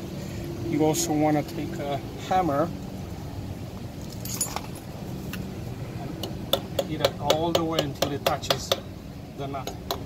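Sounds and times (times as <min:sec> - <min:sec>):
steady low hum: 0:00.0 - 0:10.0
hammer tapping metal: 0:06.2 - 0:08.9.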